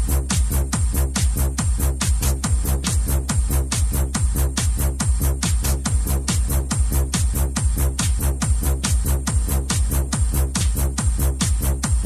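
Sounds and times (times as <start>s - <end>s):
deep bass line: 0.0s - 12.0s
electronic dance music: 0.0s - 12.0s
kick drum: 0.0s - 12.0s.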